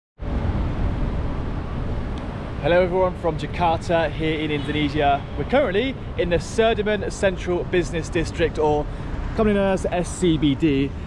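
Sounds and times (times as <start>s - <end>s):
passing cars rumble: 0.2s - 11.0s.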